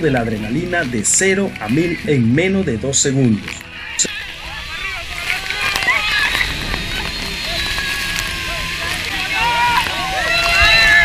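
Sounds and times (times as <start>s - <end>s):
people shouting and whooping: 3.6s - 11.0s
waterfall roaring: 3.8s - 11.0s
wind on microphone: 4.0s - 11.0s.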